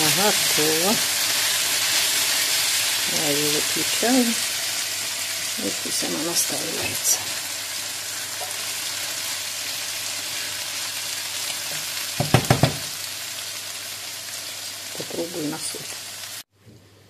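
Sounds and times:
vegetables sizzling in a frying pan: 0.0 - 16.5.

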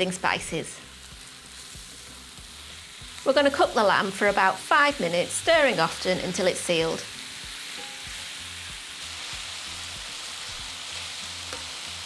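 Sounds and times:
meat sizzling in a pan: 0.0 - 12.0.

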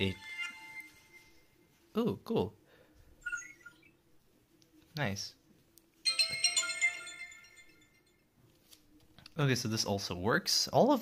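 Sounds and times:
phone startup chime: 6.0 - 8.3.

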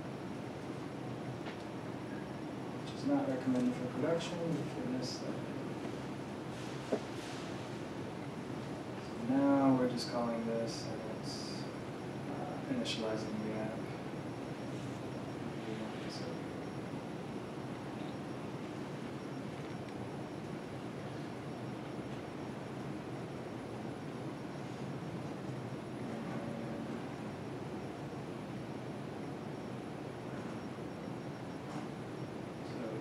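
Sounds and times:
continuous room hiss: 0.0 - 33.0.

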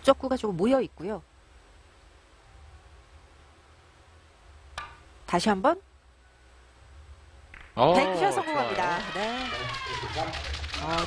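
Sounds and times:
low steady venue hum: 0.0 - 11.0.

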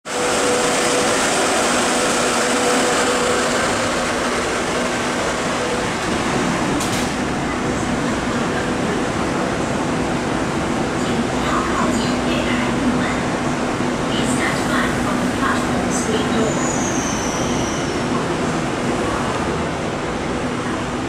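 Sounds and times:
train rail and running noise: 0.0 - 21.0.

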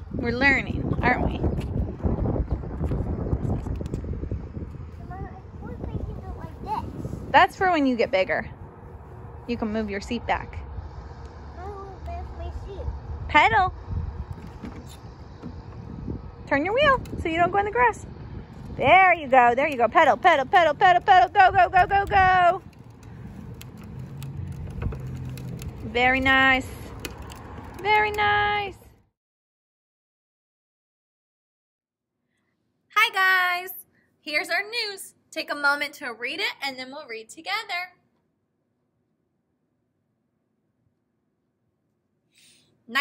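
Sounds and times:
plastic wheels rattling on concrete: 20.1 - 28.2.

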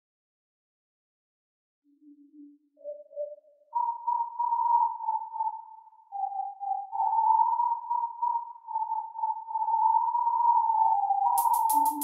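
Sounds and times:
high wavering synthesizer tone: 1.9 - 12.0.

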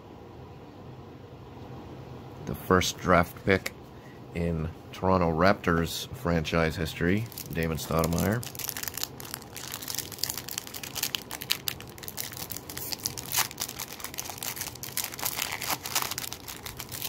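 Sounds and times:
foil wrapper crinkling: 7.2 - 17.0.

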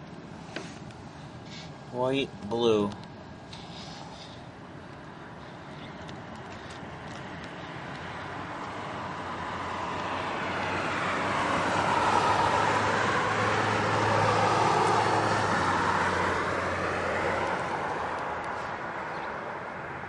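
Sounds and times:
vehicle passing by: 5.2 - 20.0.

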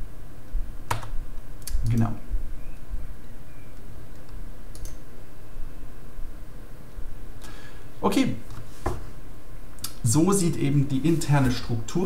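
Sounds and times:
sharp clicks: 0.9 - 2.1, 3.7 - 5.0.

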